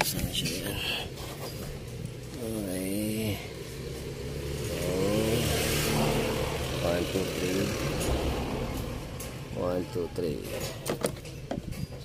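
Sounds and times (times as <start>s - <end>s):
vehicle engine revving: 1.8s - 9.8s.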